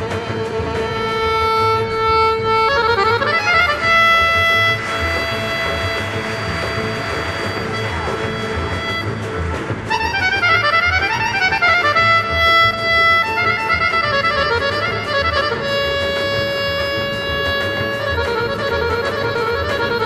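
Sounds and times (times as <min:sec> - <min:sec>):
folk orchestra playing: 0:00.0 - 0:20.0
piano accordion: 0:00.0 - 0:20.0.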